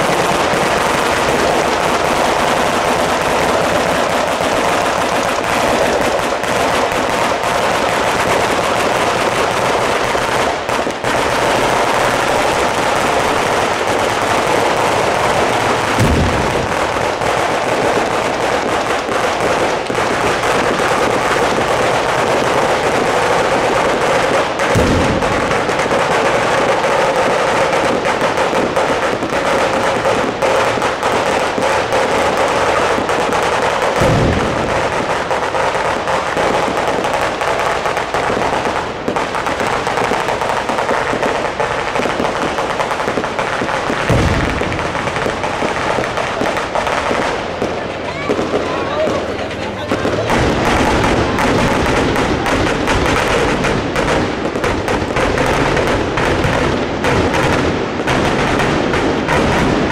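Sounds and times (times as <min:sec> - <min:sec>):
deep booms of aerial fireworks: 0:00.0 - 0:59.9
fireworks crackling and banging: 0:00.0 - 0:59.9.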